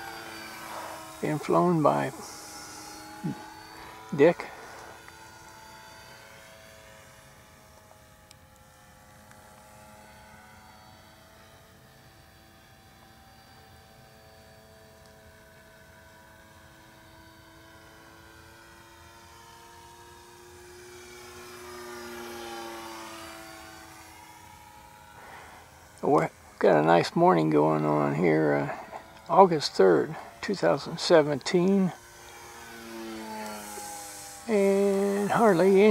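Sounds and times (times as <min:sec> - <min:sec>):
model airplane motor humming: 0:00.0 - 0:35.9.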